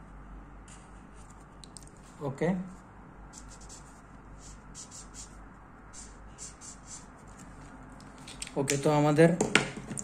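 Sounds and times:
marker rubbing on paper: 3.3s - 7.6s.

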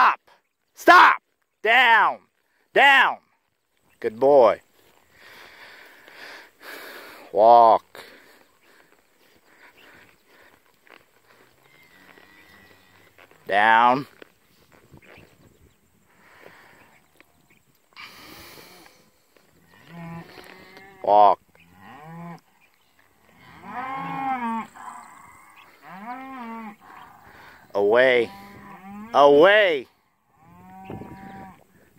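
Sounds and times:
faint low cow moo: 11.3s - 13.4s, 18.0s - 31.8s.

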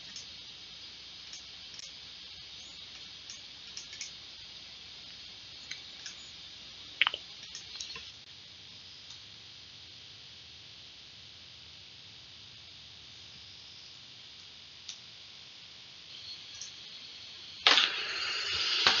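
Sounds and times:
steady hiss: 0.0s - 19.0s
computer mouse and keyboard clicks: 2.9s - 4.2s, 7.0s - 8.1s.

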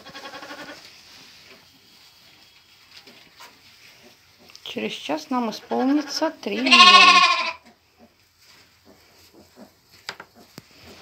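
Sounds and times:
goat bleating: 0.0s - 0.8s, 5.6s - 7.7s
faint rustling in straw: 0.0s - 11.0s.

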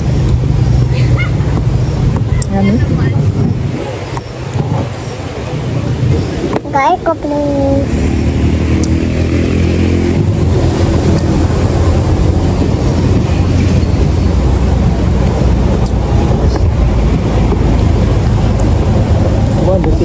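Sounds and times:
vehicle engine and road noise: 0.0s - 20.0s.

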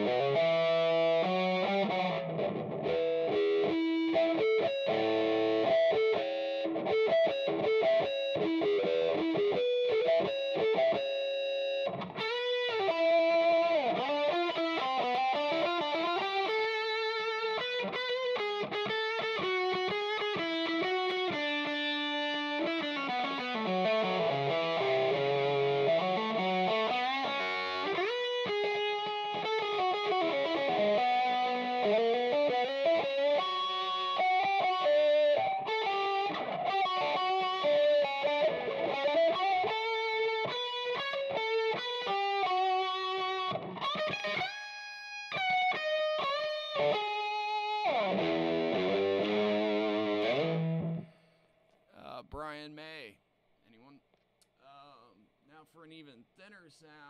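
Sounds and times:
electric guitar lead lines: 0.0s - 51.3s.

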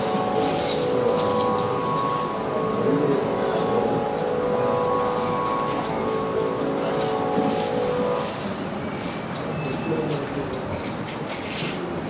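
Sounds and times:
held melodic notes over drone: 0.0s - 8.7s.

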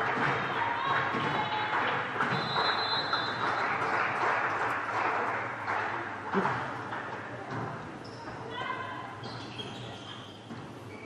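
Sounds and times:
crowd noise: 0.0s - 11.0s
referee's whistle: 2.3s - 3.5s.

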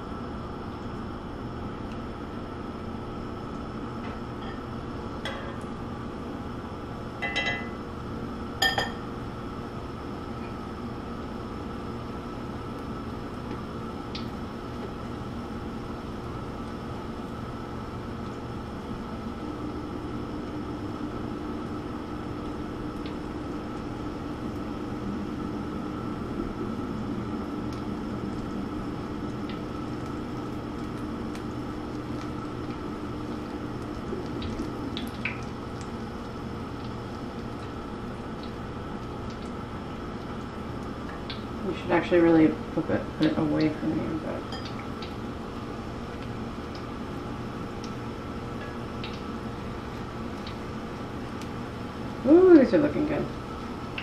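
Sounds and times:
oil sizzling and bubbling: 0.0s - 54.0s
metal tongs clinking on pan: 7.2s - 7.8s.

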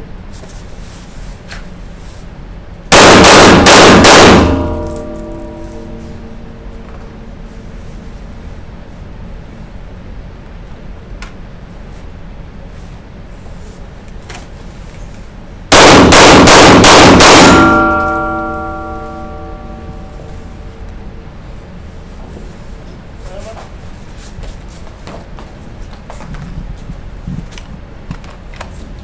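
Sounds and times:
handgun shots: 2.9s - 6.0s, 15.7s - 19.6s
ringing tone: 4.6s - 6.8s, 17.5s - 20.8s.

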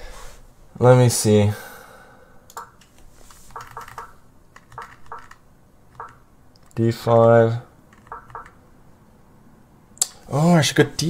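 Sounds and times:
soft computer mouse clicks: 3.5s - 6.8s, 7.9s - 8.6s.

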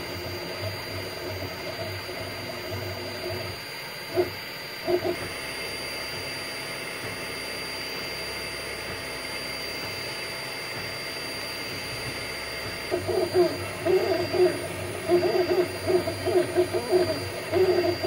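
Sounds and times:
cooling fans whirring: 0.0s - 18.0s
stepper motors humming: 7.9s - 18.0s.

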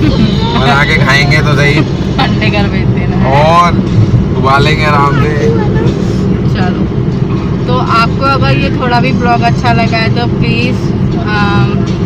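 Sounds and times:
car cabin rumble: 0.0s - 12.0s.

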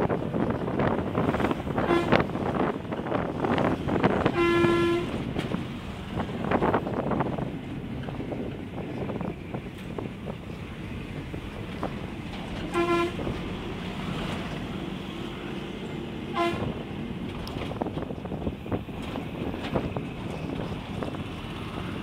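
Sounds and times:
road noise and wind: 0.0s - 22.0s
vehicle horn honking: 4.4s - 5.2s, 12.7s - 13.2s, 16.3s - 16.7s.

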